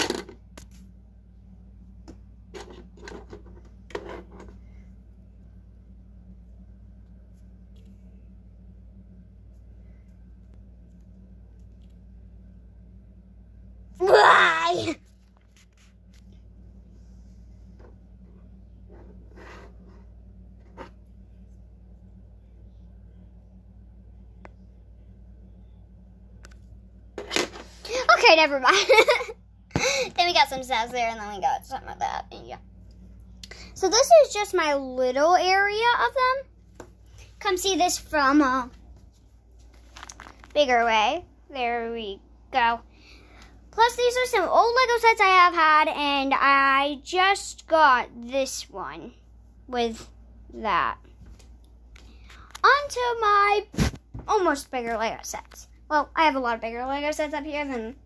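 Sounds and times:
faint low hum: 0.0s - 58.0s
girl's voice: 14.0s - 15.0s, 27.8s - 32.6s, 33.4s - 36.5s, 37.4s - 38.8s, 40.5s - 42.8s, 43.7s - 51.1s, 52.5s - 58.0s
rustling handling noise: 38.6s - 40.9s.

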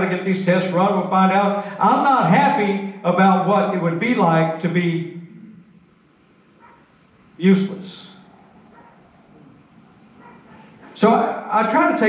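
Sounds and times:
man speaking: 0.0s - 5.2s, 7.4s - 8.2s, 11.0s - 12.0s.

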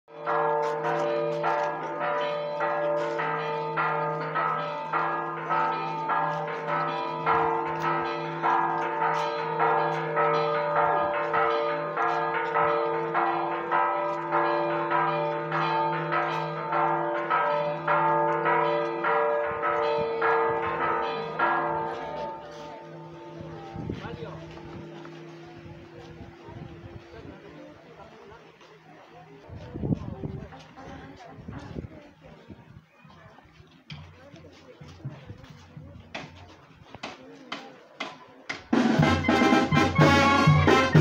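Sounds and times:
church bells pealing: 0.1s - 26.2s, 39.0s - 41.0s.

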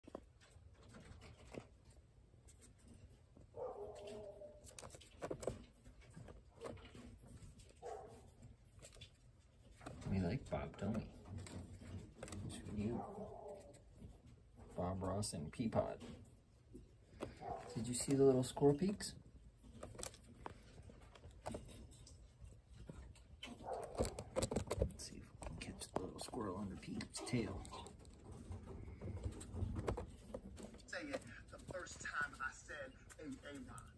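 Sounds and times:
squirrel scratching plastic: 0.0s - 33.9s.

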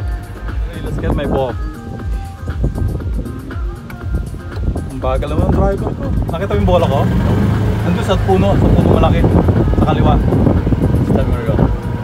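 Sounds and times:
people talking: 4.9s - 7.2s, 7.8s - 10.3s, 11.1s - 11.7s.

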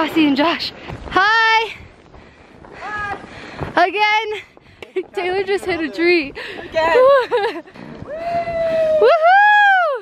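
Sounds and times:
person cheering: 8.0s - 10.0s.

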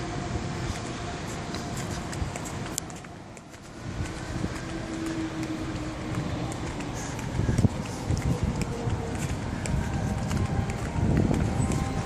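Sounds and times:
footsteps on pavement: 0.0s - 12.0s.

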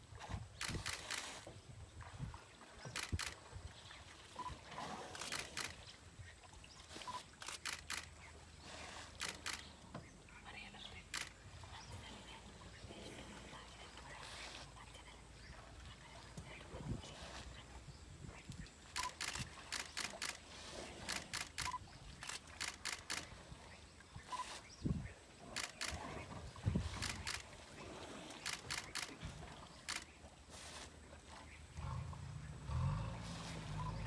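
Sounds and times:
elephant rumbling: 25.4s - 34.0s.

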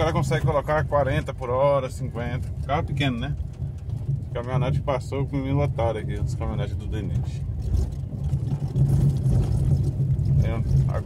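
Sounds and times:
man talking: 0.0s - 3.4s, 4.4s - 7.4s, 10.4s - 11.0s
car driving on dirt road: 0.0s - 11.0s.

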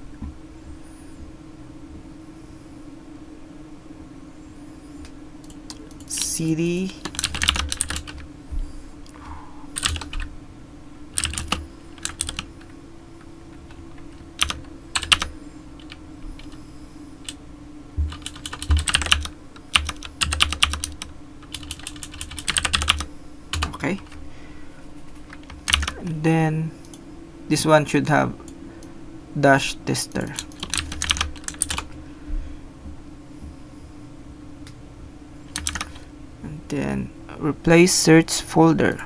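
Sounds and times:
computer keyboard typing: 5.4s - 8.2s, 9.7s - 10.3s, 11.2s - 12.7s, 13.5s - 16.6s, 18.0s - 24.2s, 25.2s - 26.2s, 30.2s - 31.9s, 35.5s - 36.0s.

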